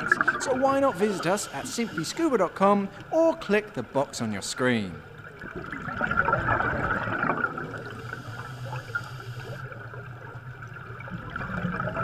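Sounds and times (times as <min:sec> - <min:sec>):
underwater air bubbles gurgling: 0:00.0 - 0:02.3, 0:05.0 - 0:12.0.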